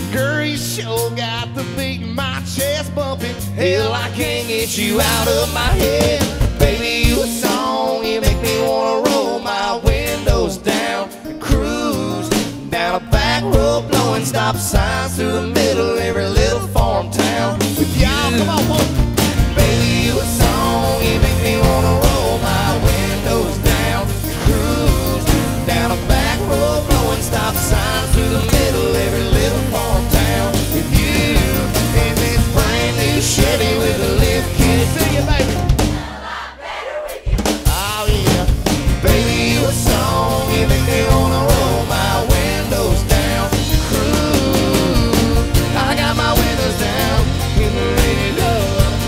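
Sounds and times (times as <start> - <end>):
acoustic guitars: 0.0 - 36.4, 37.4 - 49.0
country band playing: 0.0 - 49.0
men singing: 0.0 - 49.0
drum beat: 4.9 - 9.2, 11.5 - 36.2, 37.1 - 49.0.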